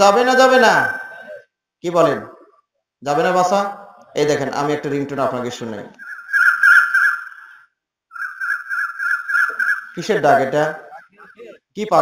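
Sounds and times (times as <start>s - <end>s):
mobile phone ringtone: 8.2s - 10.0s.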